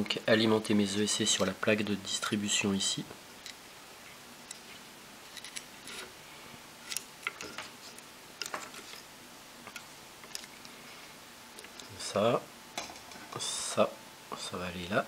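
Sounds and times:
wires tapping on frame: 0:06.8 - 0:10.7.

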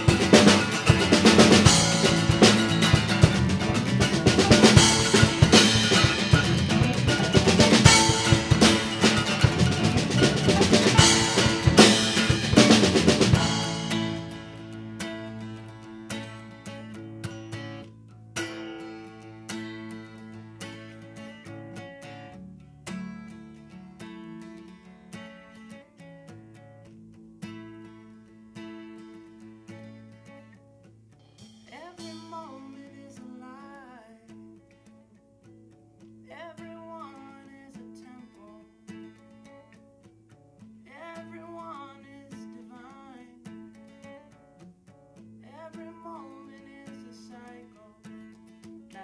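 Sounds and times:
fingerpicked acoustic guitar: 0:00.0 - 0:49.0
person singing: 0:31.7 - 0:34.3, 0:45.5 - 0:48.1.

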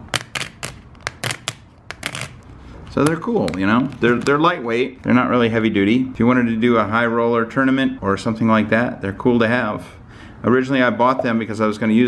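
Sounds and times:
plastic plaques clacking: 0:00.0 - 0:04.6.

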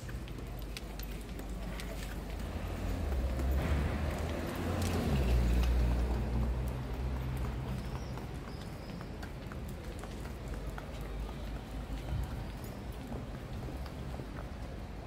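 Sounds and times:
footsteps on stone paving: 0:00.0 - 0:15.0
street ambience: 0:00.0 - 0:15.0
traffic engine hum: 0:00.0 - 0:15.0.

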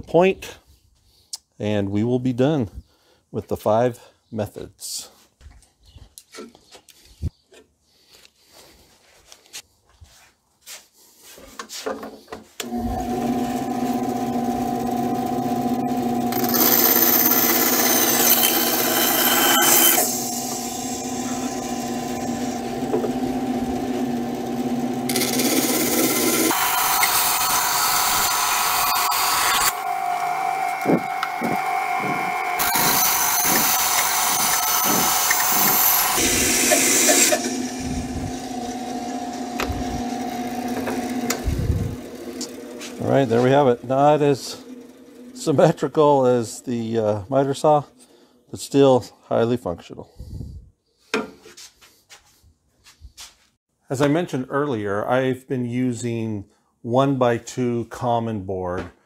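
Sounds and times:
saw blade cutting wood: 0:12.6 - 0:46.4
bandsaw motor hum: 0:12.6 - 0:47.0.

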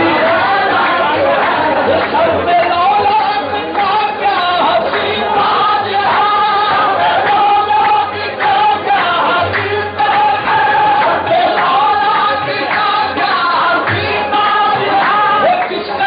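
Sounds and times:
voices singing together: 0:00.0 - 0:16.0.

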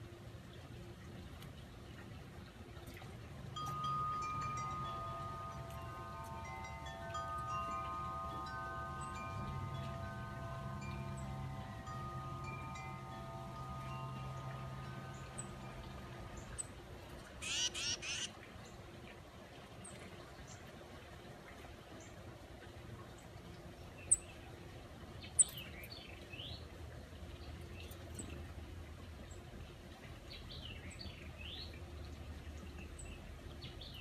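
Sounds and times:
wind chimes ringing: 0:03.4 - 0:16.8
bird harsh high calls: 0:17.4 - 0:18.3.

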